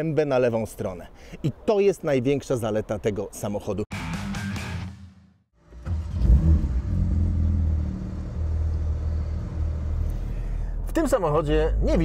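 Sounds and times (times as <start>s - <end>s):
car engine idling: 5.6s - 12.0s.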